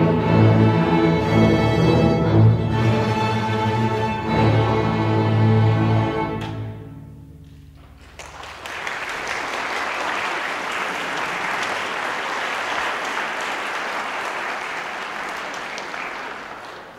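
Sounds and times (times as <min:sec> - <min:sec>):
audience applauding: 0:07.9 - 0:16.9.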